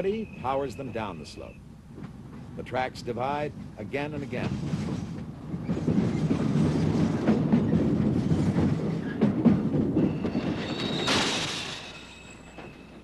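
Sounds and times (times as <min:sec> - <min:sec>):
freight car wheels rumbling and clacking: 0:01.9 - 0:13.0
high-pitched wheel squeal: 0:10.0 - 0:13.0.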